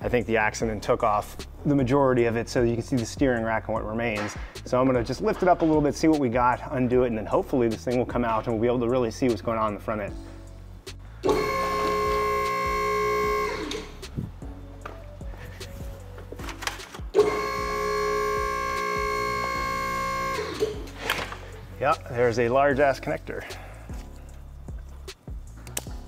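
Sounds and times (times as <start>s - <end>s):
car lift pump motor running: 11.2s - 14.0s, 17.2s - 20.9s.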